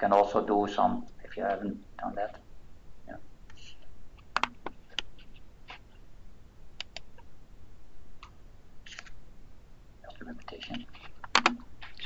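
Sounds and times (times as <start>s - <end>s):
computer mouse clicks: 4.2s - 5.8s, 6.8s - 7.3s, 8.2s - 9.2s, 10.7s - 12.0s.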